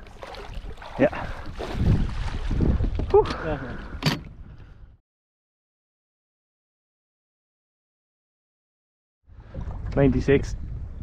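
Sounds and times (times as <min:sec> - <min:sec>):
wind rumbling on microphone: 0:00.0 - 0:05.0, 0:09.3 - 0:11.0.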